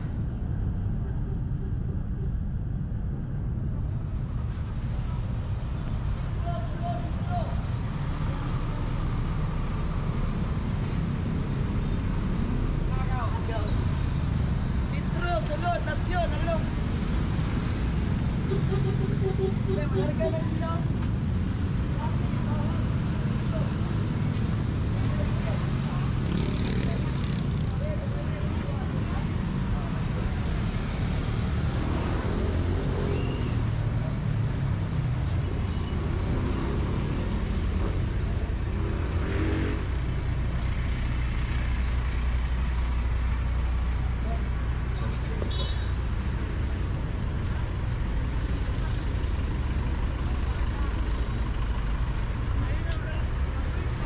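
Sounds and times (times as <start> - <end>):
engines rumbling and passing: 0.0 - 54.0
voices of passersby: 0.0 - 54.0.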